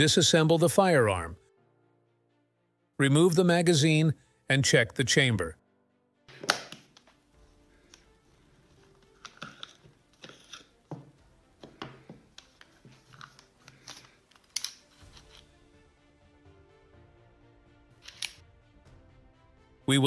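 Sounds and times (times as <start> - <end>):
faint background music: 0.0 - 20.0
pistol metallic clicks: 6.3 - 7.0, 14.4 - 15.4, 18.0 - 18.4.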